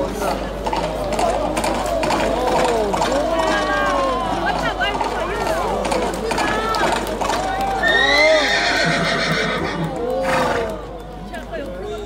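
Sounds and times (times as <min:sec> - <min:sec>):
crowd voices: 0:00.0 - 0:12.0
horse hooves clattering on asphalt: 0:00.0 - 0:12.0.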